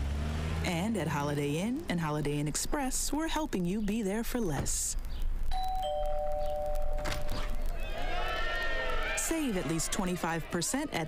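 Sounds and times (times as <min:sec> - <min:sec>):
two-note doorbell chime: 0:05.6 - 0:07.3.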